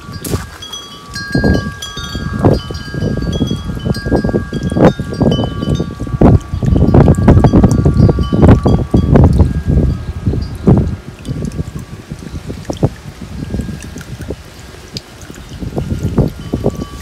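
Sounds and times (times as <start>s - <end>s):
wind chimes ringing: 0.0s - 12.5s, 13.2s - 14.5s, 15.1s - 17.0s
wind gusts buffeting microphone: 0.0s - 17.0s.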